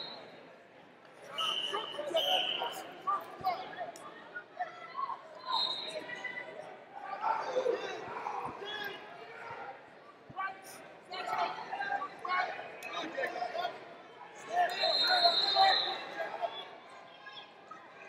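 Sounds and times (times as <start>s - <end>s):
voices shouting and talking: 1.1s - 18.0s.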